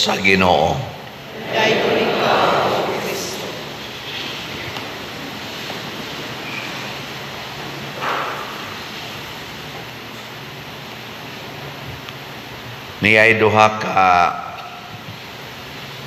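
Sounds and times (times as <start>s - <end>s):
room noise hiss: 0.0s - 16.0s.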